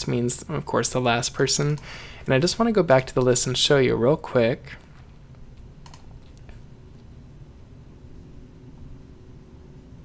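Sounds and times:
low steady room hum: 0.0 - 10.0.

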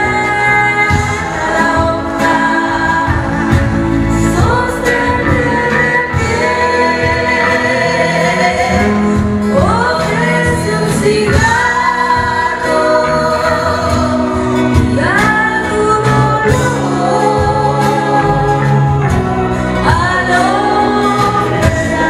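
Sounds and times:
blues guitar and bass: 0.0 - 22.0
person singing: 0.0 - 22.0.

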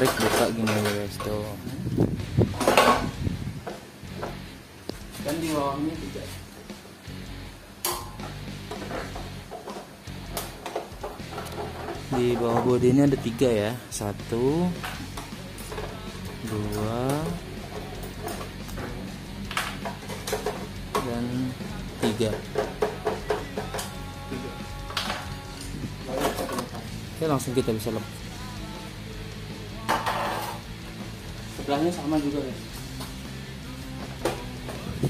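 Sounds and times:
hand tool undoing screw: 8.2 - 13.4.

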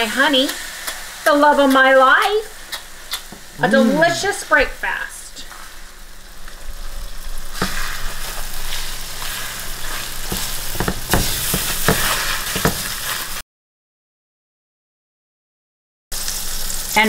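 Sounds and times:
food sizzling in a frying pan: 0.0 - 13.4, 16.1 - 17.0
spatula scraping a pan: 7.0 - 13.4.

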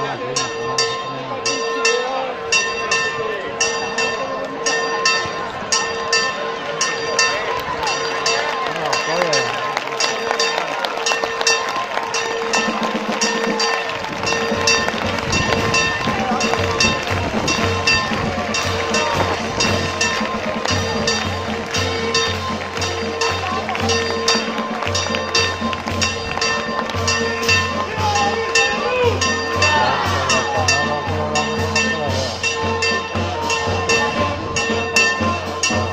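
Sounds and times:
bell ringing with rapid strikes: 0.0 - 35.9
crowd voices: 0.0 - 35.9
band music: 8.6 - 35.9.

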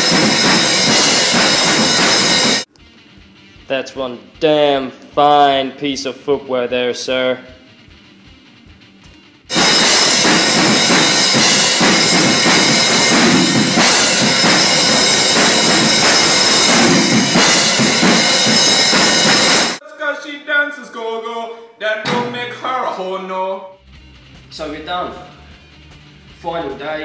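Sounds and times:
loud rock music with drums: 0.0 - 4.7, 7.4 - 19.8, 23.8 - 27.0.

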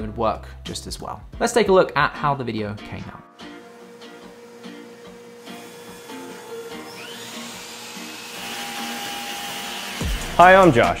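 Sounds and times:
soft background music: 0.0 - 11.0
power tool motor whining: 3.4 - 10.4.

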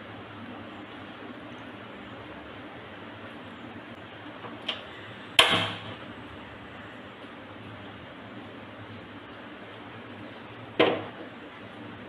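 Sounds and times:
gas burner igniting pop: 5.4 - 6.0.

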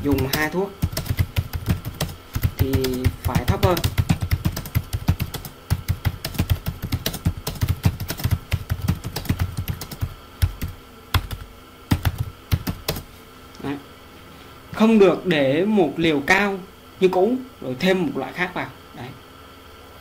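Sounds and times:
computer keyboard typing: 0.0 - 13.1.

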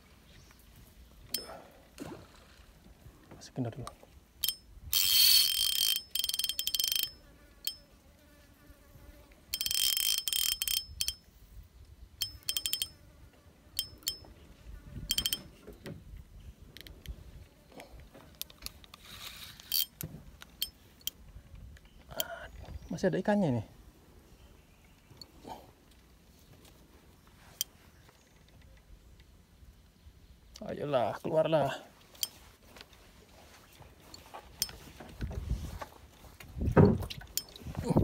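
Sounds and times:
high-pitched insect buzzing: 4.9 - 7.9, 9.5 - 11.0.

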